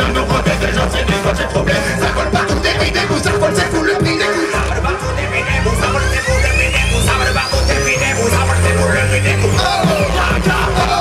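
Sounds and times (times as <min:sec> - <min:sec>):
electro swing band playing: 0:00.0 - 0:11.0
steady bass line: 0:00.0 - 0:11.0
high tone gliding up in pitch: 0:04.6 - 0:10.1.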